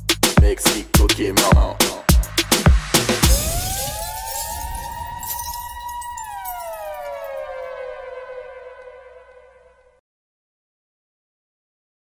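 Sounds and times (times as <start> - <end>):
wailing siren-like tone: 3.3 - 10.0.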